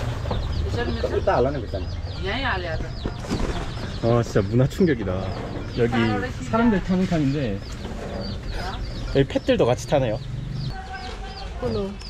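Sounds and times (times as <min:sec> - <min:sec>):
baby chicks peeping: 0:00.0 - 0:12.0.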